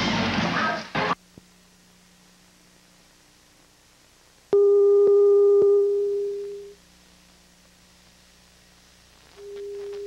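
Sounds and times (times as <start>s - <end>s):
faint low hum: 0.5s - 10.0s.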